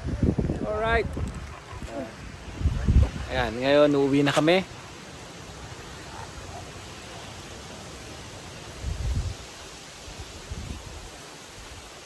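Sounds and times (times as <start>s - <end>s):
wind buffeting microphone: 0.0s - 4.1s, 8.7s - 9.5s, 10.1s - 11.9s
wind with rustling: 0.0s - 12.0s.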